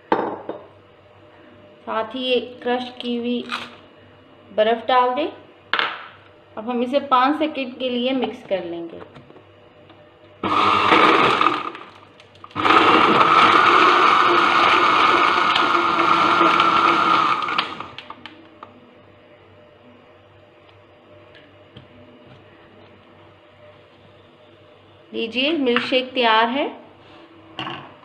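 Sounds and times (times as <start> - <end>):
blender running: 10.4 - 18.1.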